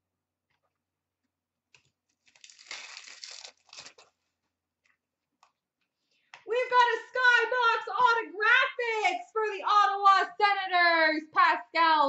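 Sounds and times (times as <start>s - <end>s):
plastic wrapper crinkling: 1.7s - 4.3s.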